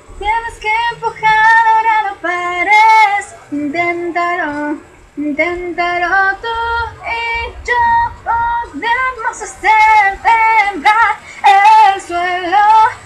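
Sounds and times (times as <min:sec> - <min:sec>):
woman singing pop melody: 0:00.0 - 0:13.0.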